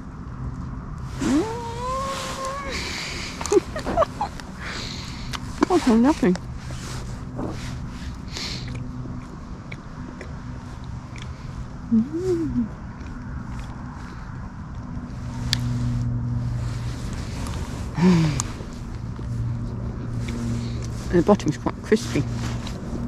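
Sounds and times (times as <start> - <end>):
low engine drone: 0.0 - 23.0
person humming: 1.2 - 4.2, 11.9 - 12.8
chewing crunchy scone: 8.4 - 11.9, 12.8 - 15.7.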